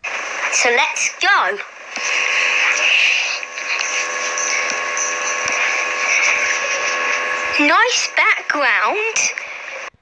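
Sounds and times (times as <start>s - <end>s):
faint steady hum tones: 0.0s - 10.0s.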